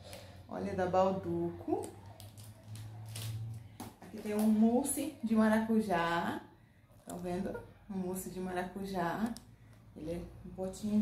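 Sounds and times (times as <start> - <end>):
plastic packaging rustling: 1.8 - 4.6.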